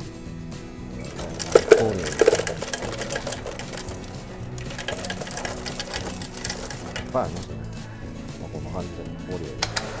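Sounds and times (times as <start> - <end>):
ice clattering into a cup: 1.0 - 7.5.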